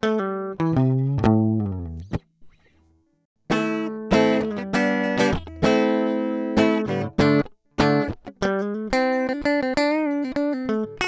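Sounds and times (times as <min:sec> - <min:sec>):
guitar picked notes and chords: 0:00.0 - 0:11.0.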